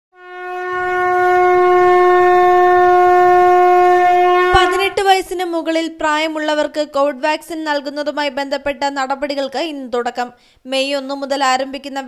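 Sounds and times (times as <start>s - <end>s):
long horn-like wind instrument note: 0.1s - 5.0s.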